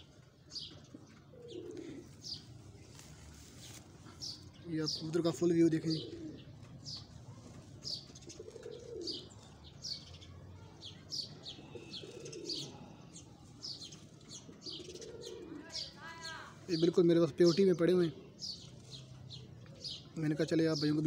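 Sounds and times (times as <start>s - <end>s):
pigeons cooing: 0.0s - 2.9s, 3.6s - 10.2s, 11.1s - 16.0s
small birds chirping: 0.0s - 21.0s.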